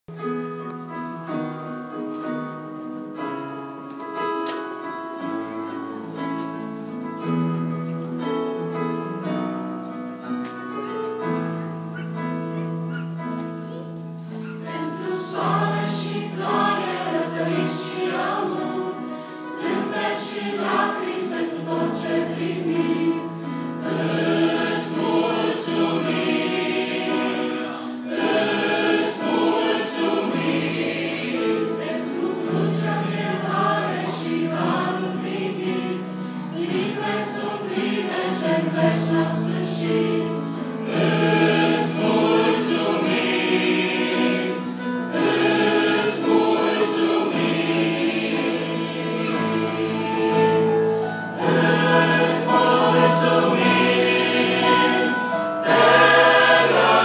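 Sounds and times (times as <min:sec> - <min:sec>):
choir singing a hymn: 0:13.2 - 0:57.0.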